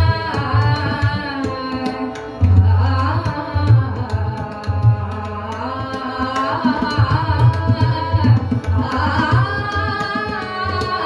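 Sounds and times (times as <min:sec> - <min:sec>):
harmonium chord: 0:00.0 - 0:11.0
tabla drum hits: 0:00.0 - 0:11.0
woman singing: 0:00.0 - 0:11.0.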